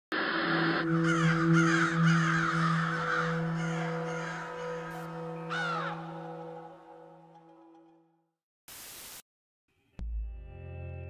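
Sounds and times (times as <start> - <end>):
low musical drone: 0.2 - 8.1
crow cawing: 0.8 - 6.8.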